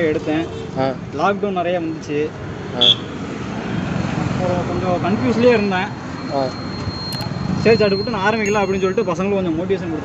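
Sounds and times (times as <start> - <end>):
roadside traffic noise: 0.0 - 10.0
short high beep: 6.3 - 9.3
voices: 7.6 - 10.0.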